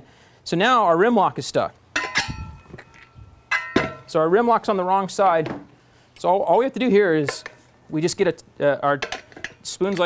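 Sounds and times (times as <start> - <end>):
metallic clanks on metal stand: 2.0 - 4.1.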